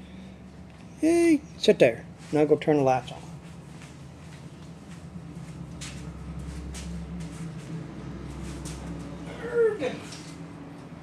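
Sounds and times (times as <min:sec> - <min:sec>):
steady low hum: 0:00.0 - 0:11.0
footsteps scuffing on concrete: 0:03.5 - 0:09.2.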